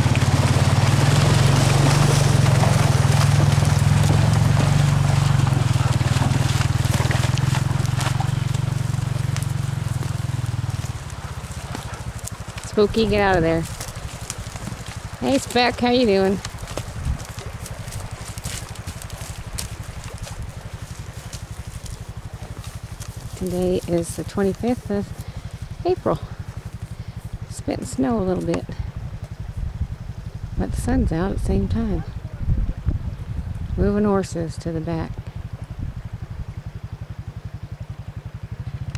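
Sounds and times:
sharp crackles: 0.0 - 30.2
atv engine pulsing low: 0.0 - 38.9.

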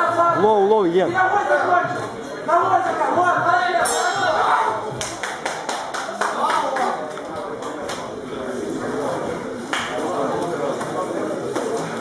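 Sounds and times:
hand clapping: 5.0 - 8.1.

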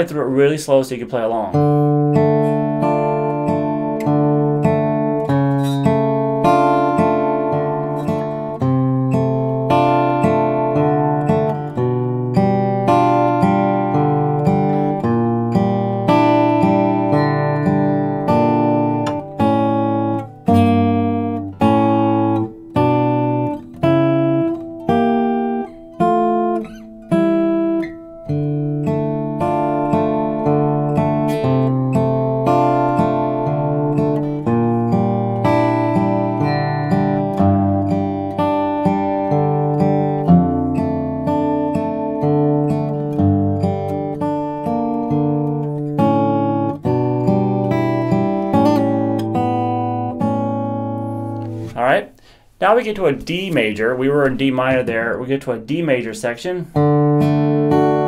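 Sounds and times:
fingerpicked acoustic guitar: 0.0 - 58.0.

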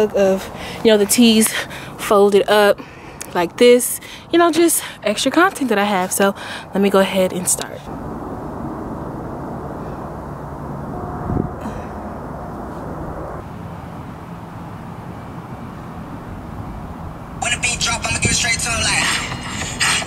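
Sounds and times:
low outdoor rumble: 0.0 - 20.0
loud song with strong beat: 18.2 - 20.0.

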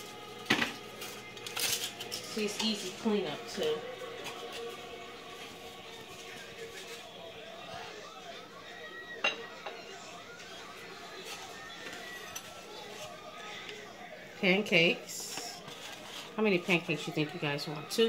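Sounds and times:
plates and spatula handling: 11.2 - 13.2, 15.2 - 17.9.

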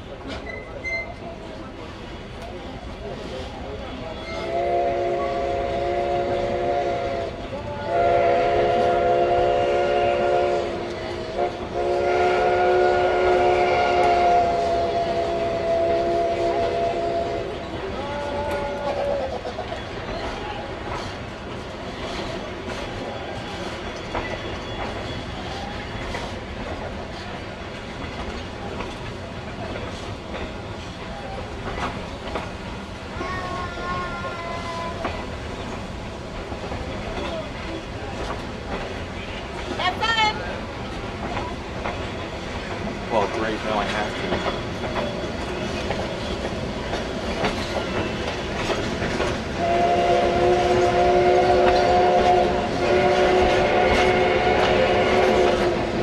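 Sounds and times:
wheels clicking on rail joints: 0.0 - 4.6, 17.5 - 56.0
train rumbling: 0.0 - 56.0
steam locomotive whistle: 4.2 - 19.2, 49.5 - 56.0.

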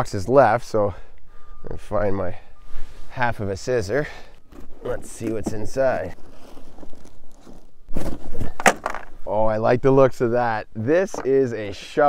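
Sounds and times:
plastic wrapping rustling: 4.5 - 9.0
cardboard box ripping: 6.2 - 8.5.

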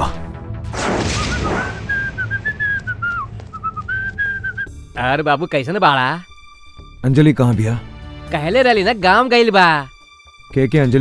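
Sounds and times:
brief rushing noise: 0.7 - 4.7
person whistling a tune: 1.6 - 4.8.

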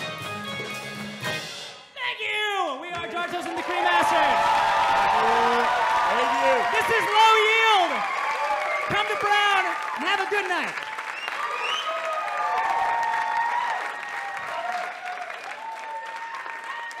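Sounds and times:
audience cheering: 2.9 - 17.0
audience applauding: 3.0 - 17.0
shouted whoops: 3.5 - 9.9, 11.2 - 17.0.

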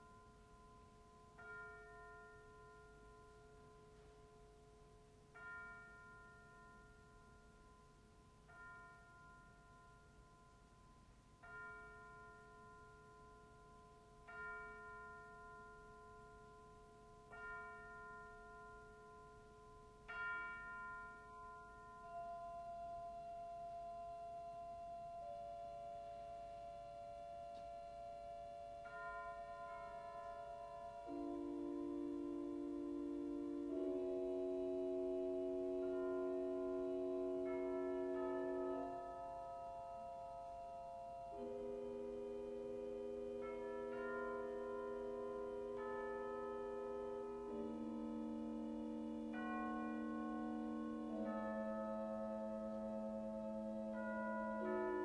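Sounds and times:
bell-like metal percussion: 0.0 - 55.0
held organ tones: 26.9 - 39.4.

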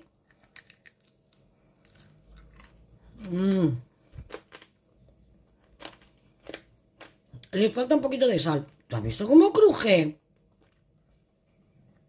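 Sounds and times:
crunchy chewing: 0.0 - 7.5.

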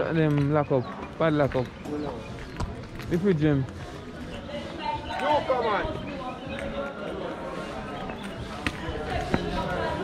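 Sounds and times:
people talking in background: 0.0 - 10.0.

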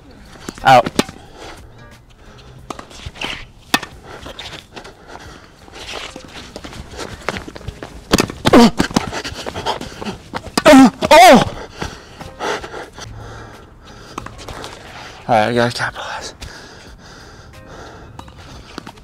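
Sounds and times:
racket striking tennis ball: 0.4 - 1.3, 2.6 - 4.8, 5.8 - 11.2, 14.1 - 15.0
quick footsteps on court: 5.9 - 12.4
player yelling: 10.6 - 11.6.

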